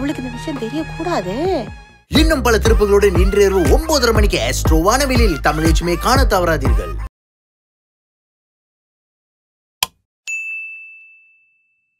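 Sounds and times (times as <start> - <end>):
notification bell ding: 10.3 - 11.9.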